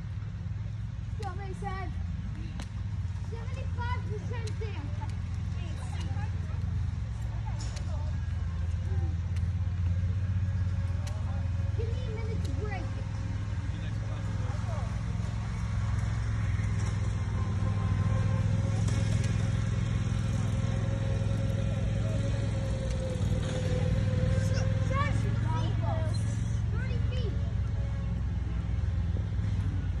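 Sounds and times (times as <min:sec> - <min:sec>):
distant people talking: 0:00.0 - 0:30.0
steady low rumble: 0:00.0 - 0:30.0.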